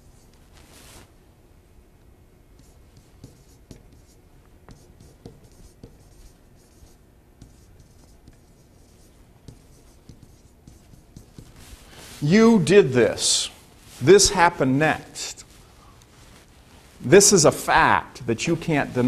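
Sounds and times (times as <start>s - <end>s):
pen writing on whiteboard: 2.6s - 11.7s.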